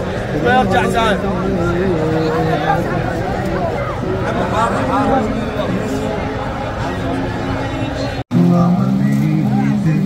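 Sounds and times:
man chanting: 0:00.0 - 0:06.3, 0:08.3 - 0:10.0.

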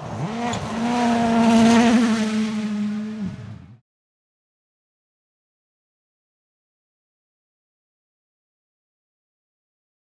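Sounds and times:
car engine at high revs passing: 0:00.0 - 0:03.8.

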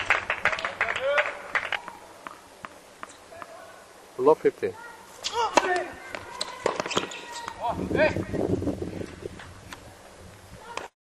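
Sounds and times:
tennis racket hitting ball: 0:05.2 - 0:07.6
tennis ball bouncing: 0:05.5 - 0:07.6.

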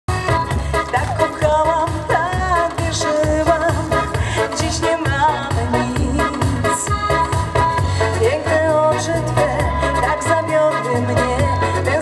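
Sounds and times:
steady dance beat: 0:00.1 - 0:09.8
keyboards: 0:00.1 - 0:12.0
woman singing: 0:00.1 - 0:12.0.

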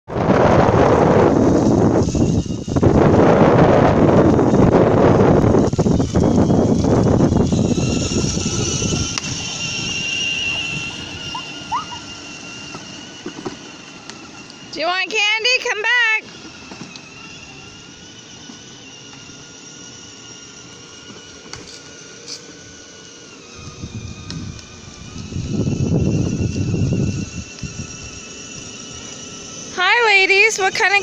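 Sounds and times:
electric motor whining: 0:00.1 - 0:31.0
plastic wheels rumbling on concrete: 0:00.1 - 0:31.0.

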